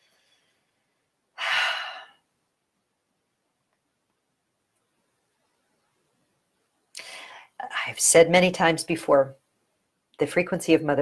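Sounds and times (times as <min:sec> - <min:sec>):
woman taking deep breath: 0:01.4 - 0:02.2, 0:07.0 - 0:07.6.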